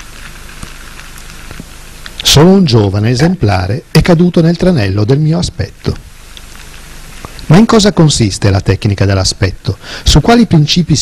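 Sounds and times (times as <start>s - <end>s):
underwater hiss: 9.7s - 10.2s.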